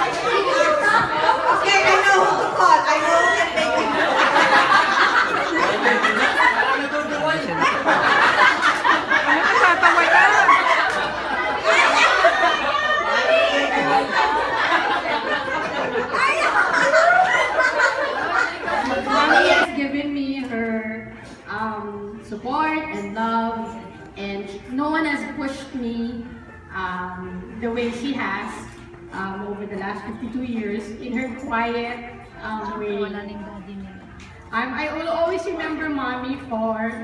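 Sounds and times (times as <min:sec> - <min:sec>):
people chattering: 0:00.0 - 0:37.0.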